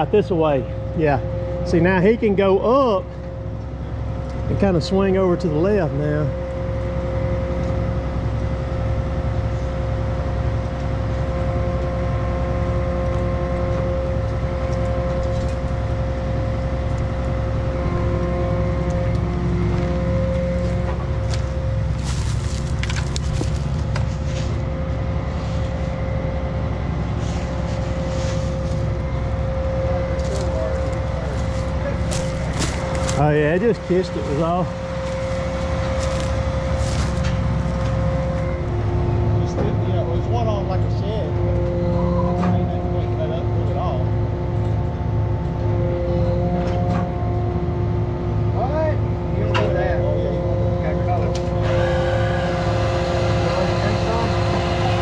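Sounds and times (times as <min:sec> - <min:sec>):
truck engine whining and rumbling: 0:00.0 - 0:55.0.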